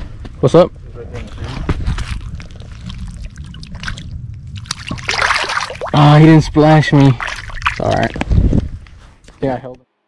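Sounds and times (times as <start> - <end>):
steady low rumble: 0.0 - 9.0
water splash and slosh: 1.4 - 8.2.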